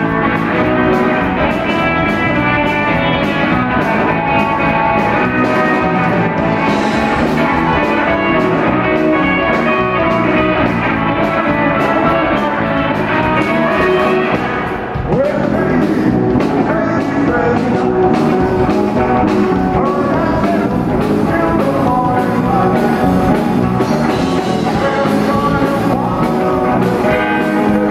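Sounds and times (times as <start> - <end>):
drum kit with steady beat: 0.0 - 27.9
electric bass: 0.0 - 27.9
electric guitars: 0.0 - 27.9
person singing: 0.0 - 27.9.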